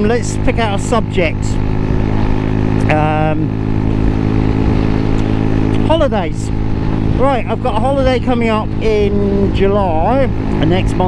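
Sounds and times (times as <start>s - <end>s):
motorcycle engine running: 0.0s - 11.0s
wind buffeting microphone: 0.0s - 11.0s.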